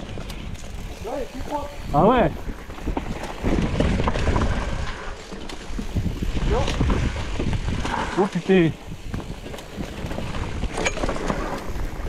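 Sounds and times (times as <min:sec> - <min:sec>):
bike tyres rumbling on dirt: 0:00.0 - 0:12.0.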